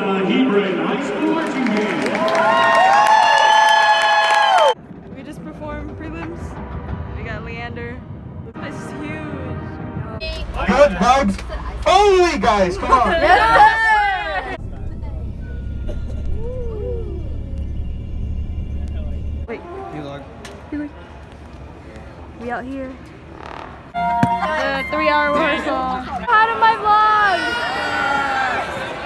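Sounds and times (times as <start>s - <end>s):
crowd applause and cheers: 0.0s - 4.8s, 10.4s - 14.6s, 24.0s - 29.0s
bus interior rumble: 10.2s - 19.5s
marching band brass and winds: 23.9s - 29.0s
wavering sliding tone: 24.0s - 26.0s.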